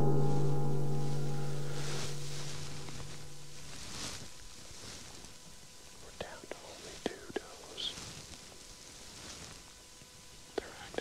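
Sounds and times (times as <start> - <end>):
person whispering: 6.0 - 8.1, 10.6 - 11.0.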